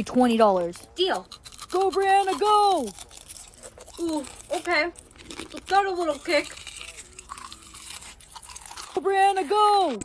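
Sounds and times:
mouth chewing with crunching: 0:00.0 - 0:10.0.

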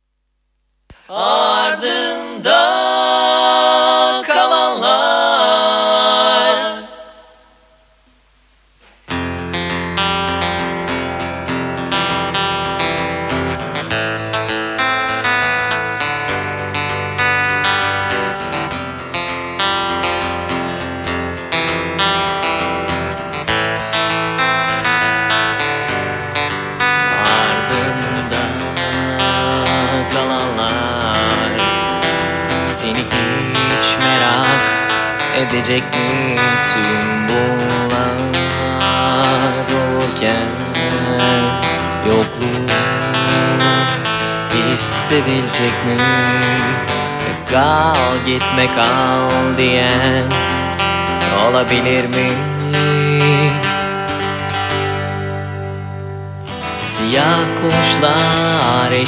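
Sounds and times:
held vocal note: 0:00.9 - 0:07.9, 0:26.7 - 0:53.8
strummed guitar: 0:08.8 - 0:59.0.

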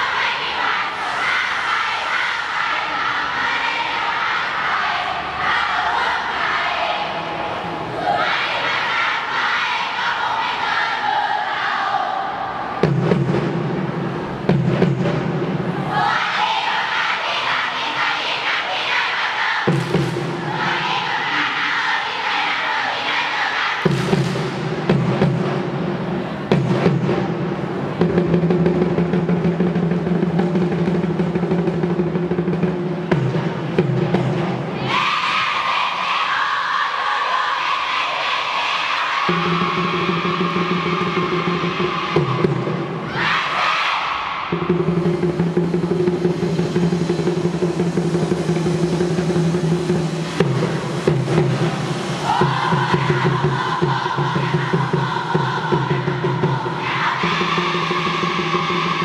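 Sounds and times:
students chanting a cheer: 0:00.0 - 0:12.9, 0:15.7 - 0:25.2, 0:34.3 - 0:45.7, 0:50.2 - 0:59.0.

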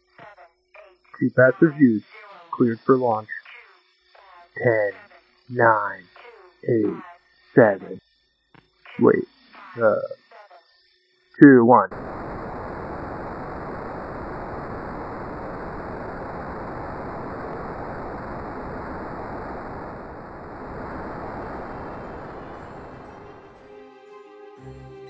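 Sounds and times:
rocket engine exhaust rushing: 0:11.9 - 0:23.6
music: 0:22.4 - 0:25.0.

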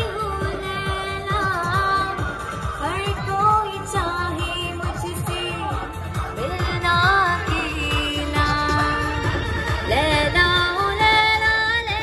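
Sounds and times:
backing track with steady beat: 0:00.0 - 0:12.0
woman singing through loudspeaker: 0:00.0 - 0:12.0.

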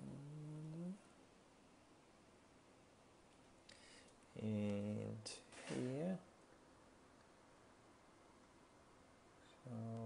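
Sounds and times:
man humming low: 0:00.0 - 0:01.1, 0:04.4 - 0:05.3, 0:09.6 - 0:10.0.

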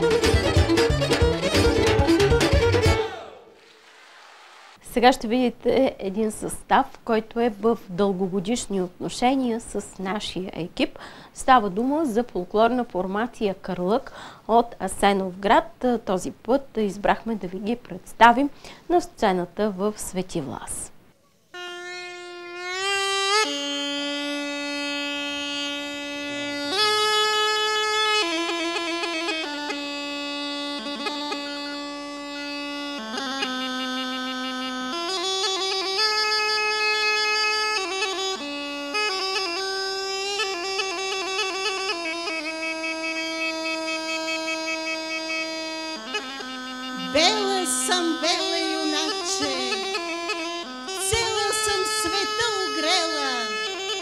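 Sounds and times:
bagpipe melody over drone: 0:21.6 - 0:54.0.

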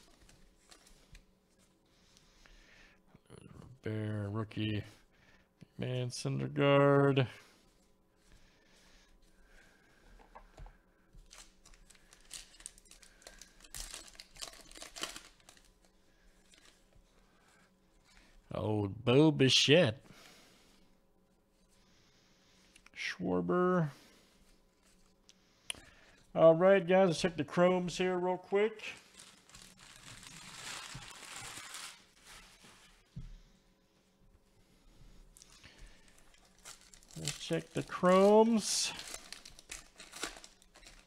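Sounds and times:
wrapper tearing and crinkling: 0:11.2 - 0:16.8, 0:28.8 - 0:32.6, 0:35.4 - 0:41.0
man speaking: 0:18.5 - 0:20.0, 0:23.0 - 0:24.0, 0:26.3 - 0:29.0, 0:37.2 - 0:39.0.

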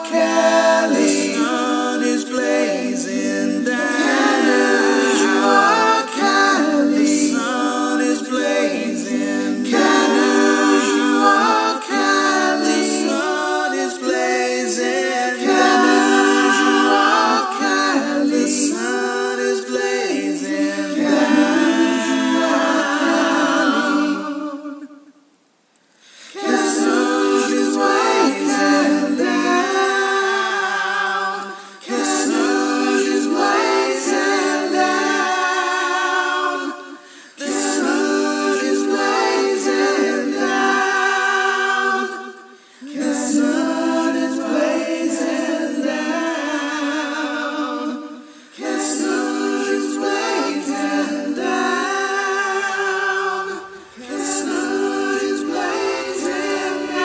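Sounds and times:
vocal group singing close harmony: 0:00.0 - 0:25.3, 0:26.0 - 0:57.0.

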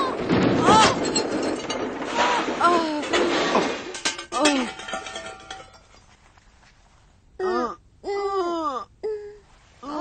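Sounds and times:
cartoon crash with clattering: 0:00.0 - 0:05.8.

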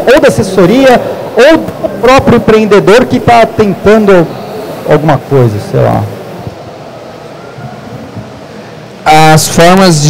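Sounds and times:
exhibition hall background rush: 0:00.0 - 0:10.0.

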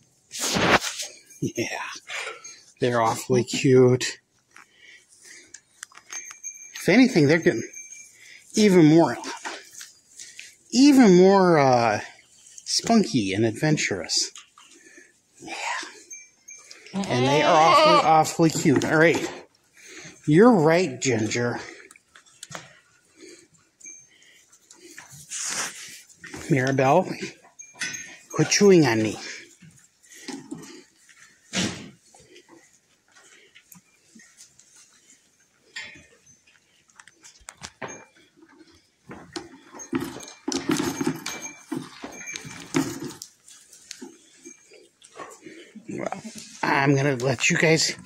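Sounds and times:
goats rustling in straw: 0:23.0 - 0:26.5, 0:28.4 - 0:35.6, 0:43.0 - 0:45.4.

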